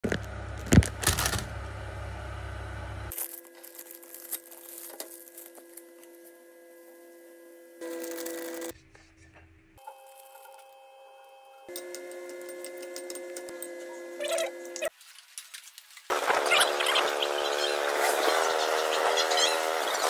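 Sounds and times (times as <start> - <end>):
plastic packet crinkling and tearing: 3.1 - 5.9.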